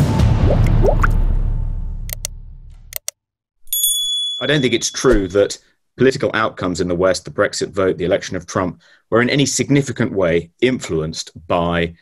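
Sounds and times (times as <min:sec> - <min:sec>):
rising bloop effects: 0:00.4 - 0:01.2.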